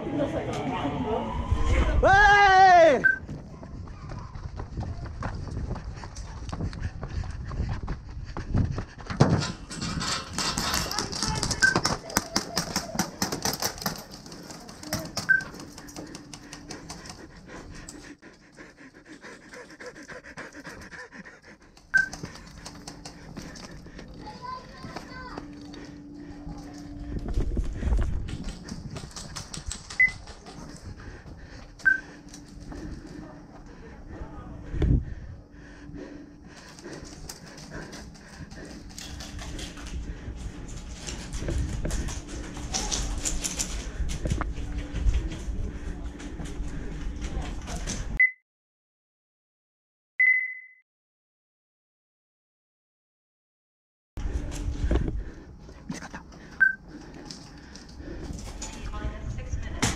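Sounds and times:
man breathing hard: 0:12.7 - 0:47.3, 0:54.2 - 0:58.8.

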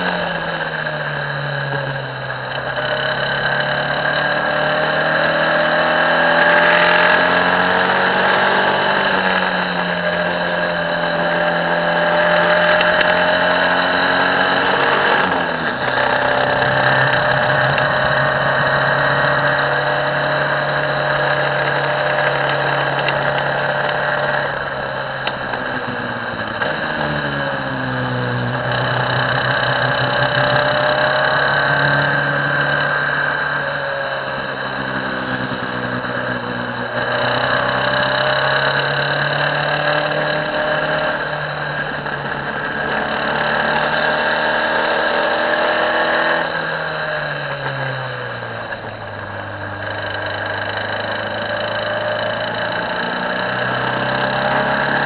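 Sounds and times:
race car engine at high revs: 0:00.0 - 0:55.0
wind and road noise: 0:00.0 - 0:55.0.

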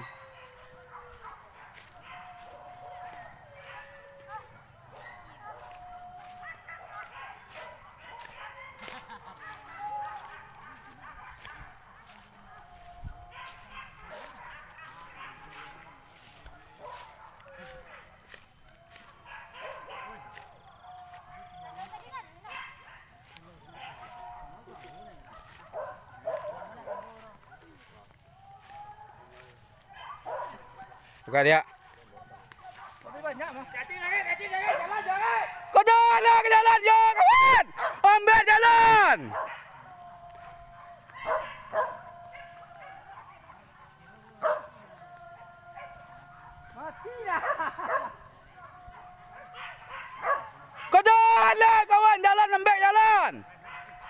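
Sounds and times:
dog yelps: 0:00.0 - 0:18.1, 0:19.2 - 0:20.3, 0:21.0 - 0:23.1, 0:29.9 - 0:31.1, 0:39.0 - 0:43.8, 0:44.4 - 0:51.1
dogs barking and whining: 0:00.0 - 0:51.6, 0:52.5 - 0:54.0
people talking: 0:19.7 - 0:29.7.

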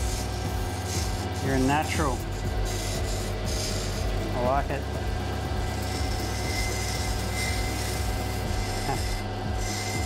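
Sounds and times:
grinding wheel motor hum: 0:00.0 - 0:10.0
stone grinding against wheel: 0:00.0 - 0:10.0.

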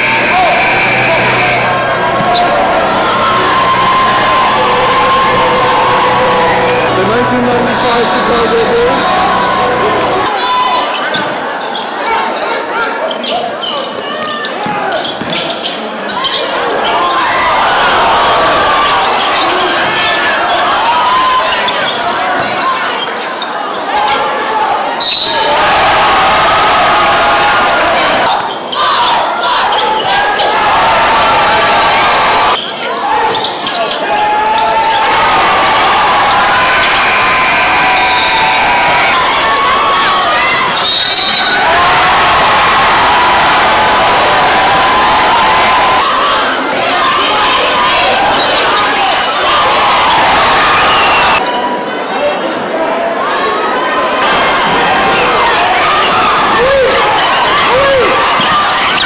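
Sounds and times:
crowd shouting and cheering: 0:00.0 - 0:59.0.

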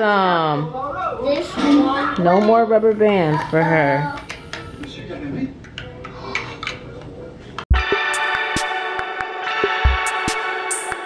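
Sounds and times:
loud electronic music: 0:07.7 - 0:11.0.

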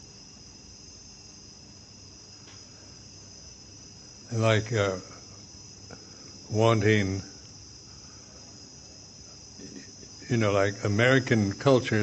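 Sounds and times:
faint room hiss: 0:00.0 - 0:12.0
high insect chirring: 0:00.0 - 0:12.0.

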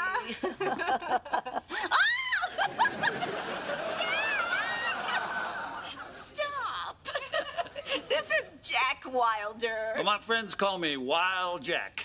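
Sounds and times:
studio audience laughing: 0:02.4 - 0:06.4, 0:07.1 - 0:08.4.

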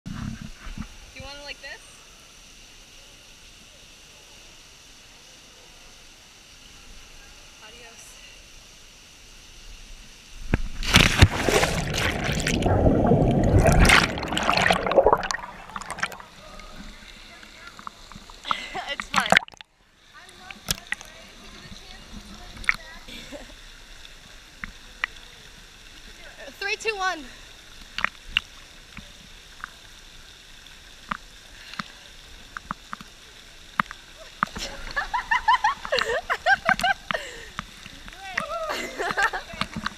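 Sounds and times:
underwater rushing water: 0:10.5 - 0:39.9
loud splash into water: 0:10.6 - 0:16.5.

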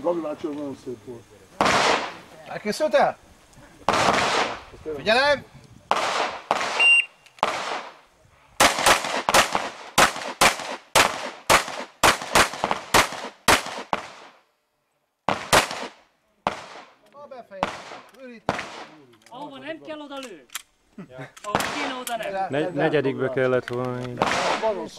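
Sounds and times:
pistol shots: 0:01.6 - 0:02.2, 0:03.9 - 0:04.6, 0:05.9 - 0:08.0, 0:08.6 - 0:14.4, 0:15.3 - 0:16.9, 0:17.6 - 0:19.0, 0:24.2 - 0:24.8
shot timer beep: 0:06.8 - 0:07.2.

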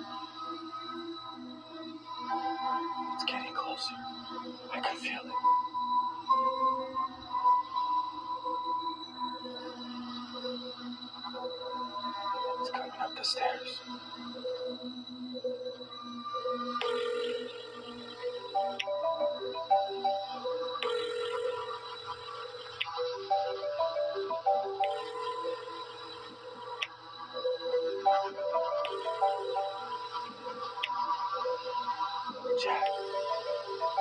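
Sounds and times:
horror film score drone: 0:00.0 - 0:34.0
mobile phone ringtone: 0:16.7 - 0:26.8, 0:27.7 - 0:30.9, 0:32.6 - 0:34.0.

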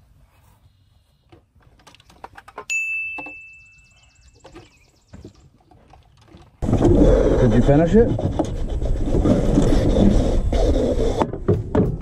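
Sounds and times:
sharp metallic ding: 0:02.7 - 0:04.3.

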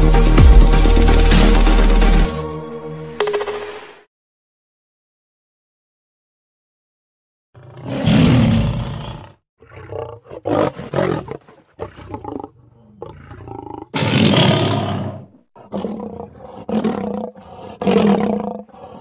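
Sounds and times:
tiger roaring: 0:07.6 - 0:19.0.

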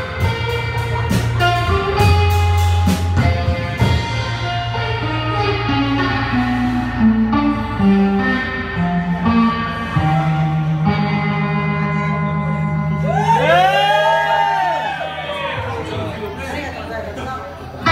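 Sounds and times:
electric guitar notes: 0:00.0 - 0:16.2
garage rock band playing: 0:00.0 - 0:16.3.

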